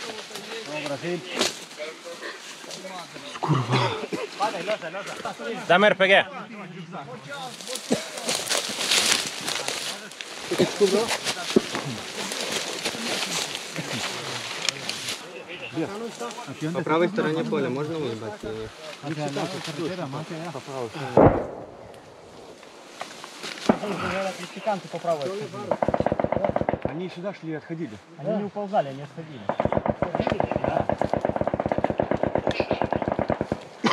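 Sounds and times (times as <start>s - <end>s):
men's voices: 0.0s - 33.9s
loud weapon blast: 21.2s - 21.8s.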